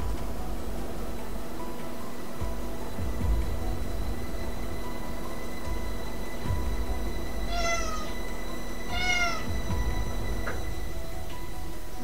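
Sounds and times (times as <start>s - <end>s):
cat meowing: 7.5s - 8.2s, 8.9s - 9.6s.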